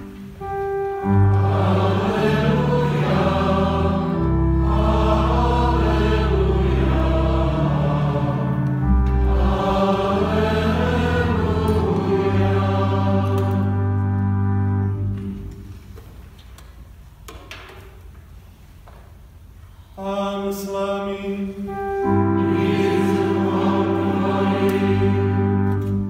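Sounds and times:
church choir singing: 0:00.0 - 0:15.2, 0:20.0 - 0:26.0
long steady low notes: 0:00.0 - 0:16.0, 0:21.6 - 0:26.0.

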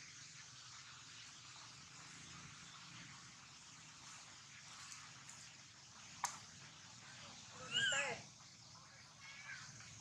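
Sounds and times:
baby monkey crying: 0:07.6 - 0:08.2.

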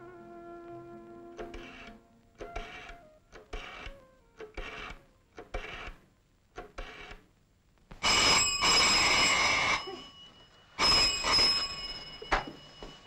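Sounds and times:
desk telephone bell ringing: 0:08.0 - 0:13.0.

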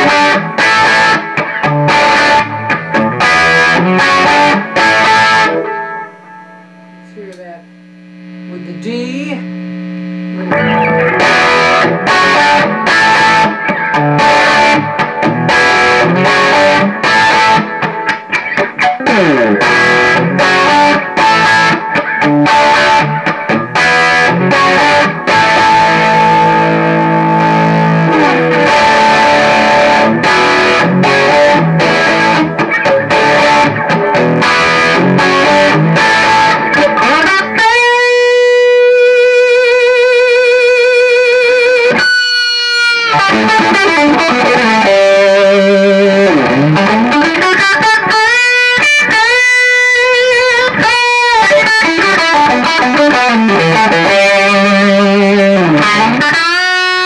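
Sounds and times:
overdriven electric guitar: 0:00.0 - 0:57.0.

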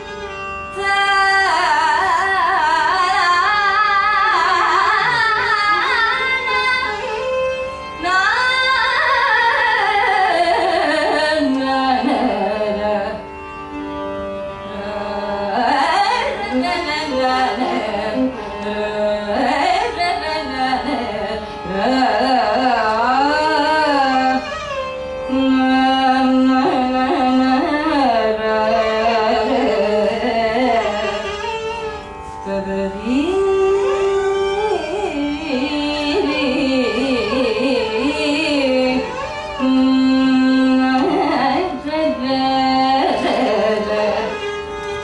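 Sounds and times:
woman singing wordless improvisation: 0:14.7 - 0:24.5, 0:25.2 - 0:31.4, 0:32.4 - 0:44.6.

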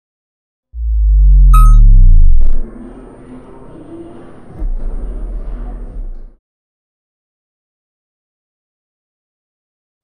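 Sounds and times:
deep synthesized bass tone: 0:00.8 - 0:02.7
high ding: 0:01.5 - 0:02.2.

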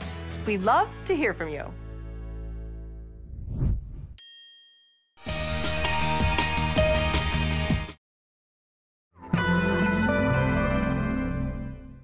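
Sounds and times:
rising whoosh: 0:03.2 - 0:04.2
bright bell-like ding: 0:04.2 - 0:05.2.

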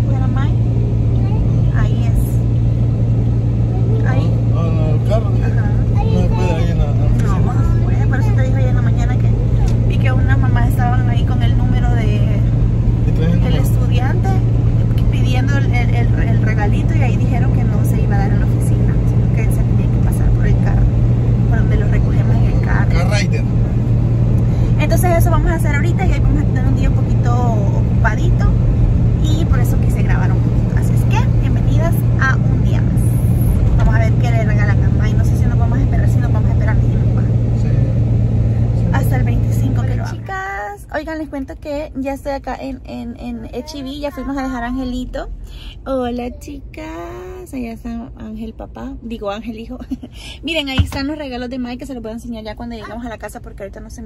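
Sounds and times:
car engine and road noise: 0:00.0 - 0:54.0
voices talking: 0:03.6 - 0:23.8, 0:38.6 - 0:53.5.

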